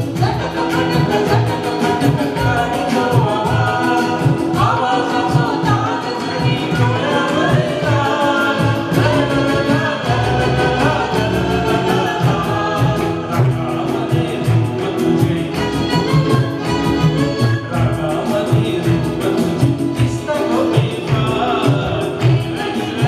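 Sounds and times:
congas: 0.0 - 23.0
man and woman singing duet: 0.0 - 23.0
tabla: 0.0 - 23.0.

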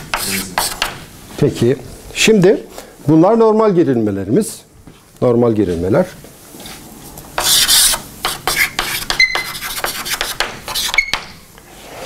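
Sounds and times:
chalk scratching on blackboard: 0.0 - 1.0, 7.4 - 11.4.

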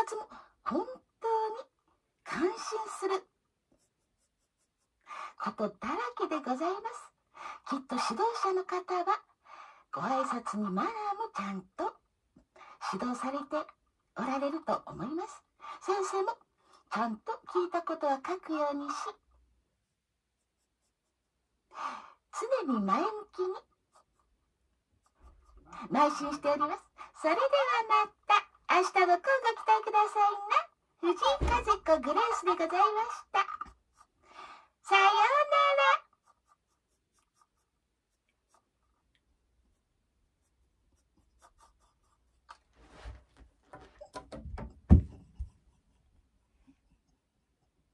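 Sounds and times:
person speaking: 25.0 - 34.1
light rustles and knocks: 42.6 - 45.6.

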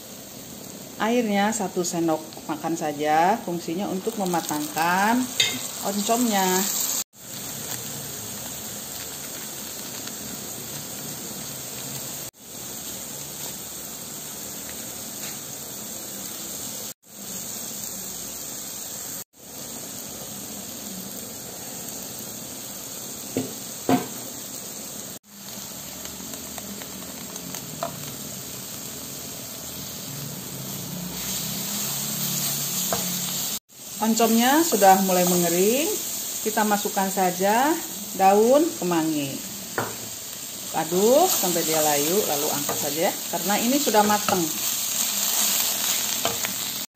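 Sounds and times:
food sizzling in a wok: 0.0 - 46.9.

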